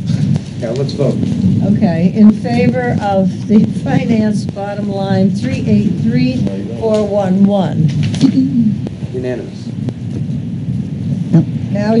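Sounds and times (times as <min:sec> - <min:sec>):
muffled murmur of voices: 0:00.0 - 0:09.7
person speaking clearly: 0:00.0 - 0:09.7.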